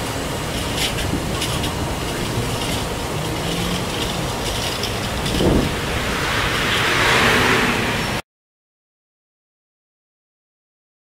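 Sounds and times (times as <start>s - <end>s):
outdoor traffic noise: 0.0s - 8.2s.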